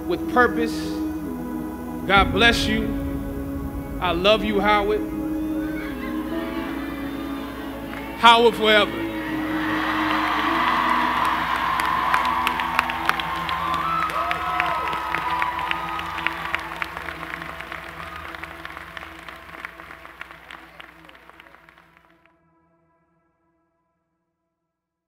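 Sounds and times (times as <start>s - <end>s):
soft background music: 0.0s - 21.7s
crowd applauding and cheering: 2.2s - 22.1s
whoops: 9.2s - 18.6s.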